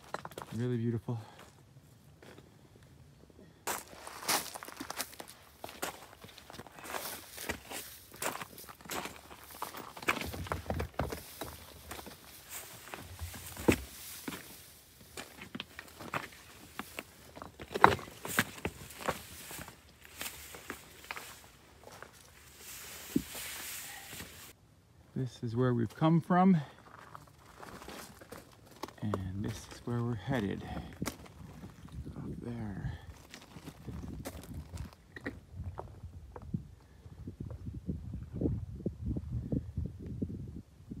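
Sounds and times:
footsteps on rocks and gravel: 0:00.0 - 0:02.6, 0:03.6 - 0:24.6, 0:25.8 - 0:37.7.

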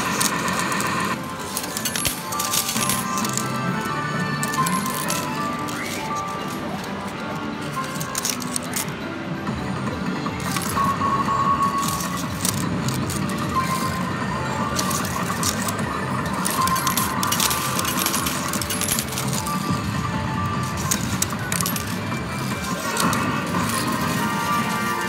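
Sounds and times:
electronic arcade music: 0:00.0 - 0:25.0
metal medals clinking: 0:00.1 - 0:09.0, 0:10.4 - 0:25.0.

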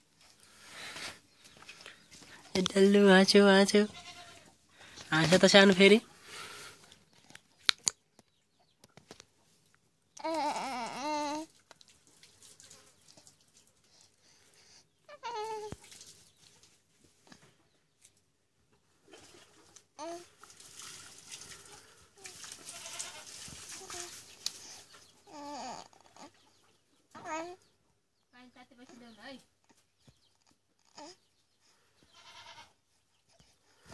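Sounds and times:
baby cooing: 0:10.2 - 0:11.5, 0:15.1 - 0:15.7, 0:20.0 - 0:20.3, 0:25.2 - 0:26.3, 0:27.2 - 0:27.6, 0:30.4 - 0:31.2.

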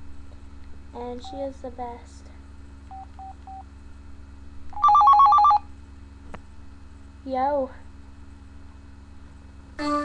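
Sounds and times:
phone ringtone trilling: 0:04.8 - 0:05.7.

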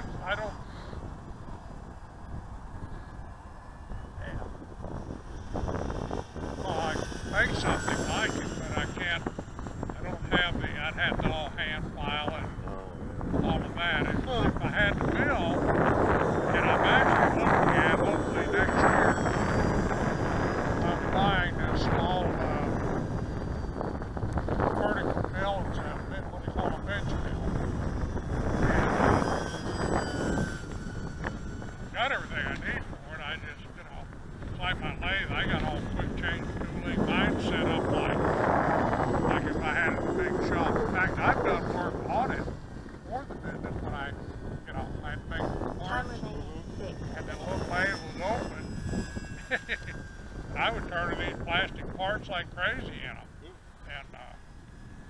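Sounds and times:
model plane motor whine: 0:00.0 - 0:55.0
wind on microphone: 0:00.0 - 0:55.0.

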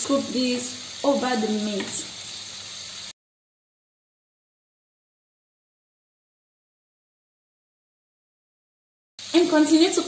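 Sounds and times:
steaks sizzling in a pan: 0:00.0 - 0:03.2, 0:09.2 - 0:10.0.

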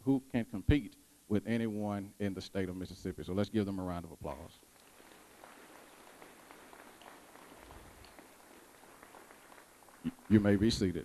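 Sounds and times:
faint audience applause: 0:04.7 - 0:11.0.

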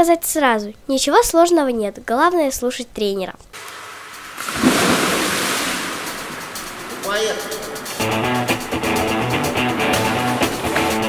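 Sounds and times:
pool water splashing: 0:03.6 - 0:08.8.

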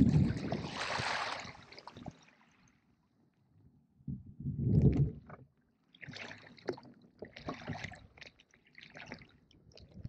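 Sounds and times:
oars rushing through water: 0:00.0 - 0:02.2
small splashes and drips: 0:00.2 - 0:02.8, 0:04.9 - 0:10.0.

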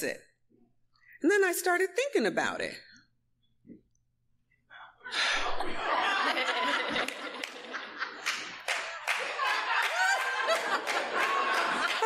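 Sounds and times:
laughter: 0:05.1 - 0:12.0
audience clapping: 0:06.6 - 0:12.0.

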